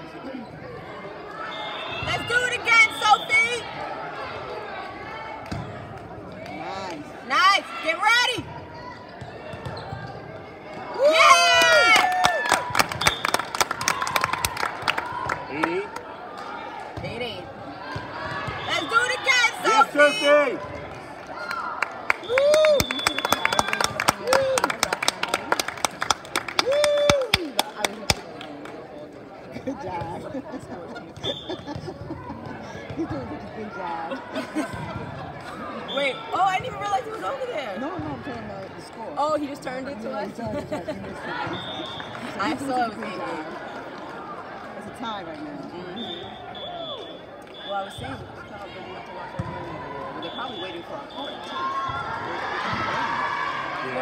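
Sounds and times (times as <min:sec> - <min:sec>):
voices of players and spectators: 0:00.0 - 0:54.0
shoe squeaks on court: 0:09.0 - 0:10.2.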